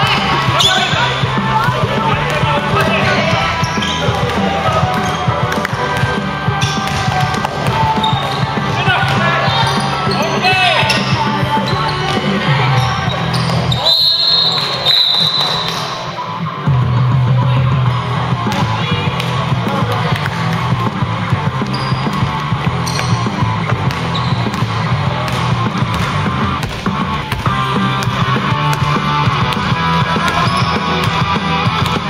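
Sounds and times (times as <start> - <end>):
sneakers squeaking: 0.0 - 16.2, 17.8 - 32.0
players calling out: 0.0 - 16.4, 17.8 - 32.0.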